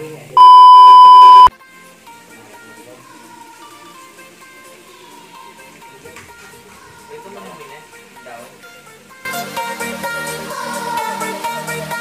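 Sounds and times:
loud test-tone beep: 0:00.4 - 0:01.5
soft background music: 0:01.5 - 0:12.0.

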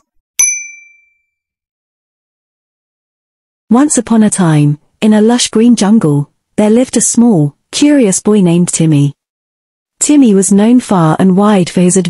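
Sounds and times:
high-pitched notification ding: 0:00.4 - 0:01.3.

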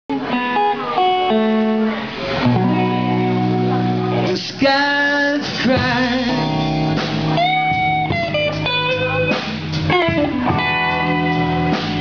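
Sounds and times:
electric blues band playing: 0:00.1 - 0:12.0
electric guitar lead lines: 0:00.1 - 0:12.0.

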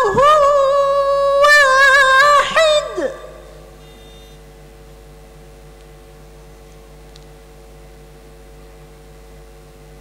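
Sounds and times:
woman reciting melodically: 0:00.0 - 0:03.8
faint steady hum: 0:00.0 - 0:10.0.

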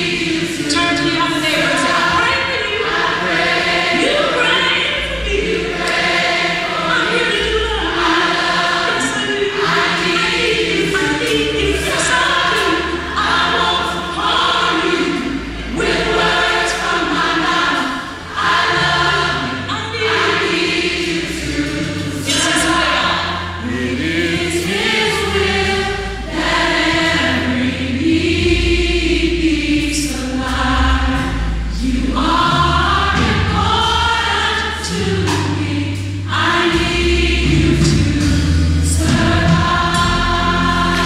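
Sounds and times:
choir singing in harmony: 0:00.0 - 0:41.0
sustained low bass notes: 0:10.0 - 0:41.0.

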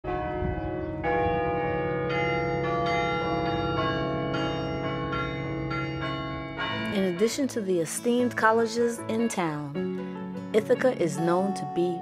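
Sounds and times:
chime bells ringing a slow tune: 0:00.2 - 0:08.3.

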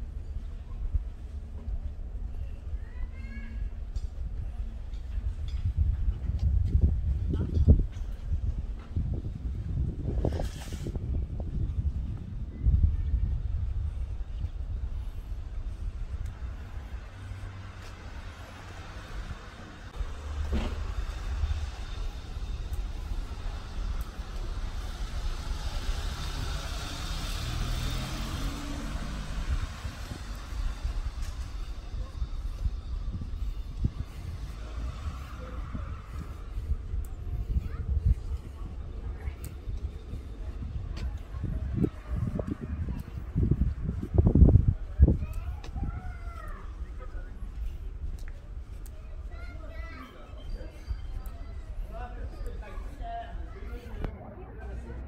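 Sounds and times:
steady low rumble: 0:00.0 - 0:55.0
car passing: 0:14.7 - 0:45.2
high-heeled footsteps on pavement: 0:33.1 - 0:54.1.

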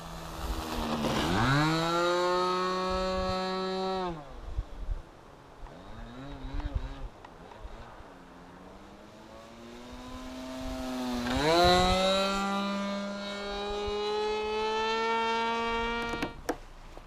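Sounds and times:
model airplane engine buzzing: 0:00.0 - 0:04.4, 0:08.5 - 0:16.6.

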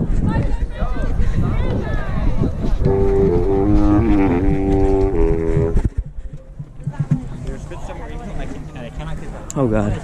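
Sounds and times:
wind instrument sustained notes: 0:02.8 - 0:05.9.

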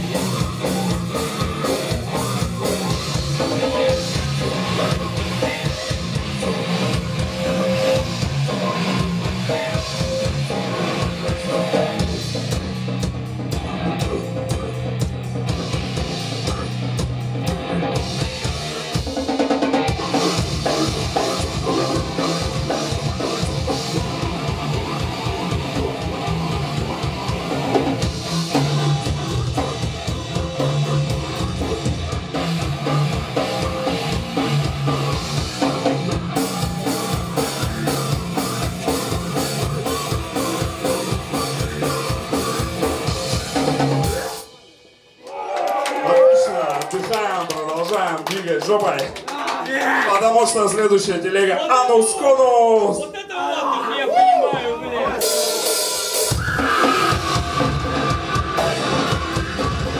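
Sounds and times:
vocalist at microphone: 0:00.0 - 0:12.5, 0:20.0 - 0:27.8, 0:49.7 - 0:59.9
rapid drumming: 0:00.0 - 0:44.7, 0:46.0 - 0:51.4, 0:54.6 - 0:59.9
distorted electric guitar: 0:00.0 - 0:44.9, 0:54.9 - 0:59.9.

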